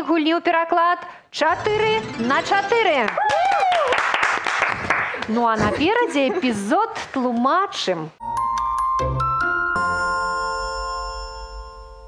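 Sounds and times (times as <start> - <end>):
chime-like jingle chord: 8.8 - 12.0.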